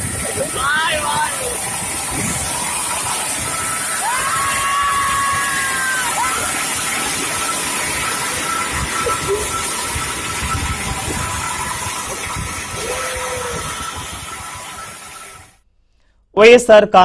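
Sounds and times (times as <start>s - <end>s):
motorcycles running: 0.0s - 15.6s
wind and road noise: 0.0s - 15.6s.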